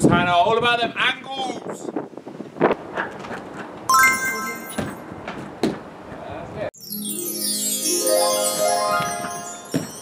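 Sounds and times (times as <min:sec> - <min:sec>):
wind on microphone: 0:00.0 - 0:03.4
bright ringing chime: 0:03.9 - 0:05.0, 0:06.8 - 0:10.0.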